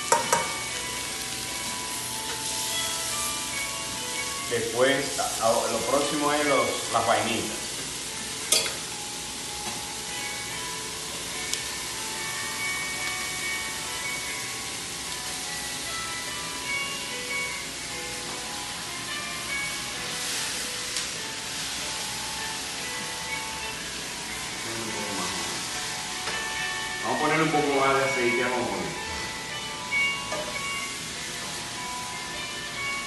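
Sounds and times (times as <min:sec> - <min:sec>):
soft background music: 0:00.0 - 0:33.0
vegetables sizzling in a wok: 0:00.0 - 0:33.0.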